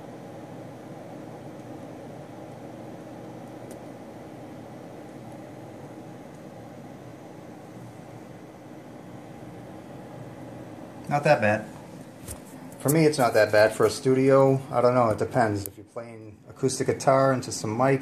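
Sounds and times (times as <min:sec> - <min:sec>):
computer cooling fans whirring: 0:00.0 - 0:18.0.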